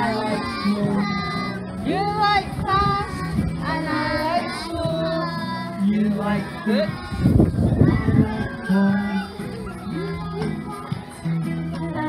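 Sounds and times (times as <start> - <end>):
children singing: 0.0 - 12.0.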